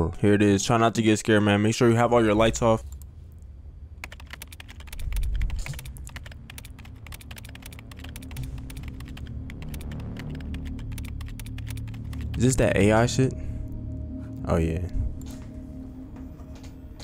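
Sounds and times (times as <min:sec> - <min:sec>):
fast keyboard typing: 0:04.0 - 0:12.6
low steady drone: 0:05.9 - 0:17.0.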